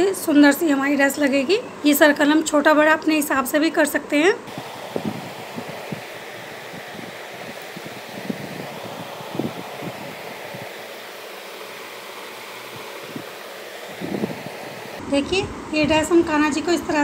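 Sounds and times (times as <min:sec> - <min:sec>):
steady whooshing noise: 0:04.5 - 0:15.1.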